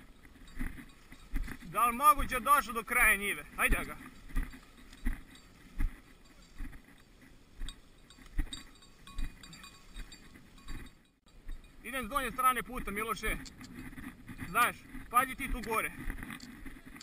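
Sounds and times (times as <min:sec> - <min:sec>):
footsteps through dry grass: 0:00.0 - 0:17.0
rustling vegetation: 0:00.0 - 0:17.0.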